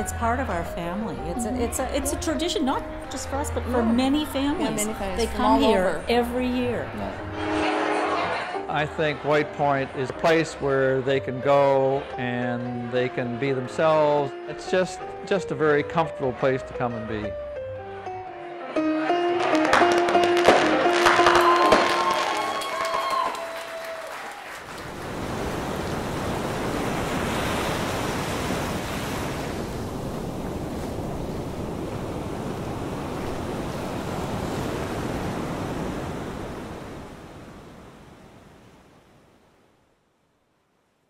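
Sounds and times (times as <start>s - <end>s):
music ringing chord: 0.0s - 9.6s
ocean surf breaking: 24.6s - 39.4s.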